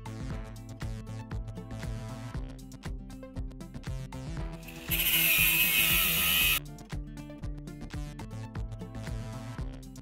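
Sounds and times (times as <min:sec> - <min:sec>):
background music: 0:00.0 - 0:10.0
angle grinder cutting steel mesh: 0:04.6 - 0:06.6.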